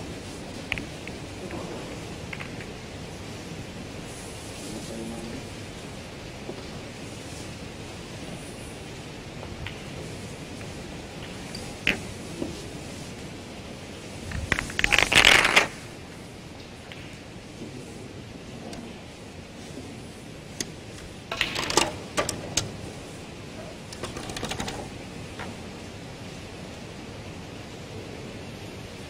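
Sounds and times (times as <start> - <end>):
snooker balls clacking: 20.6 - 22.8, 23.5 - 25.7.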